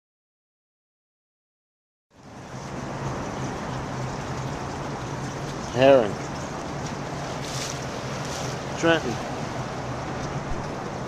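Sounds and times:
water and wind noise: 2.1s - 11.0s
steady low hum: 2.2s - 11.0s.

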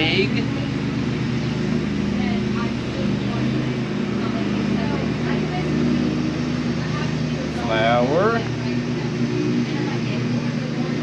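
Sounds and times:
lawn mower engine running: 0.0s - 11.0s.

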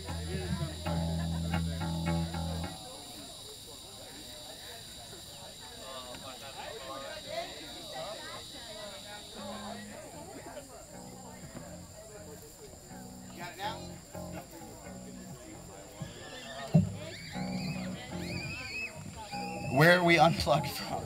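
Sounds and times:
low amplified instrument notes: 0.0s - 2.8s, 9.4s - 10.1s, 12.9s - 16.1s, 16.7s - 21.0s
background chatter: 0.0s - 21.0s.

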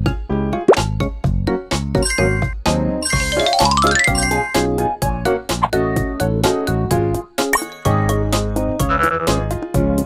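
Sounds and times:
bouncy cartoon music: 0.1s - 10.0s
rising run of chiming notes: 3.0s - 4.6s.

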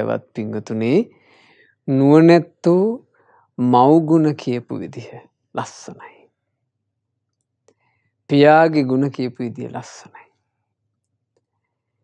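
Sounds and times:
man talking: 0.0s - 1.1s, 1.9s - 3.0s, 3.6s - 6.2s, 8.3s - 10.3s.

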